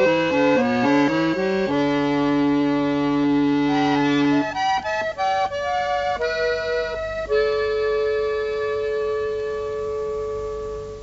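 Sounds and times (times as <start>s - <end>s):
accordion sustained chord: 0.0s - 11.0s.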